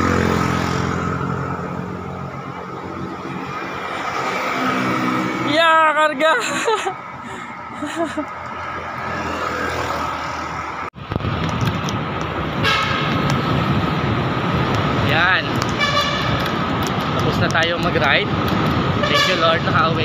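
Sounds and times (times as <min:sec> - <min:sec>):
road traffic rushing past: 0:00.0 - 0:20.0
vehicle horn toots: 0:12.6 - 0:13.1, 0:15.8 - 0:16.4, 0:19.0 - 0:19.6.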